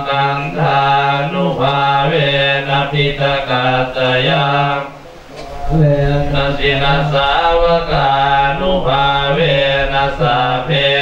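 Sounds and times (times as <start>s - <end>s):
monks chanting in unison: 0.0s - 11.0s.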